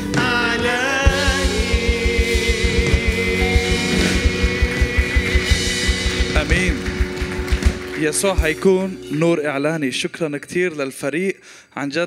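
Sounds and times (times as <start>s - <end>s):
rapid low drum hits: 1.0s - 8.6s.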